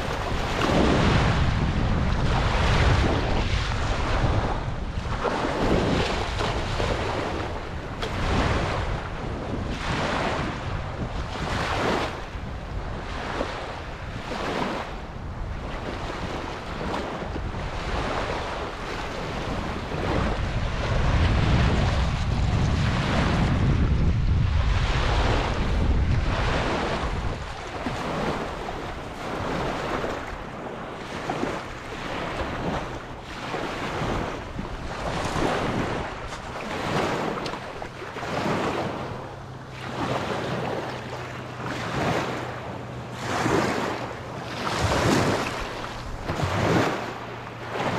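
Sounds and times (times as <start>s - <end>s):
waves lapping on pebbly shore: 0.0s - 47.9s
wind buffeting microphone: 0.0s - 47.9s.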